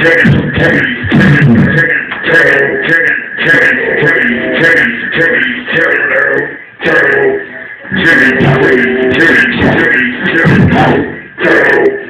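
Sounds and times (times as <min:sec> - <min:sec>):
processed voice-like synth sound: 0:00.0 - 0:12.0
steady high held tone: 0:00.0 - 0:12.0.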